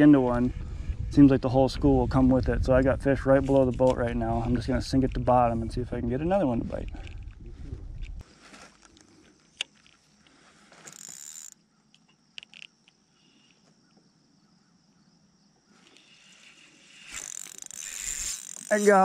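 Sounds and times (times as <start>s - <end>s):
low rumble of movement: 0.0s - 8.2s
fishing gear handling noises: 6.8s - 11.6s, 15.8s - 19.0s.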